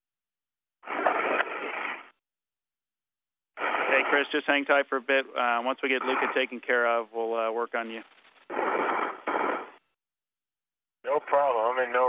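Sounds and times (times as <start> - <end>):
radio static hiss: 0.8 - 2.2, 3.6 - 10.0, 11.1 - 12.0.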